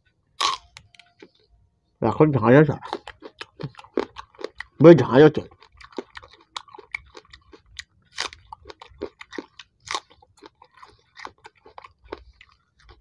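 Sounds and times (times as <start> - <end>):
onion crunching while chewed: 0.4 - 1.4, 2.8 - 13.0.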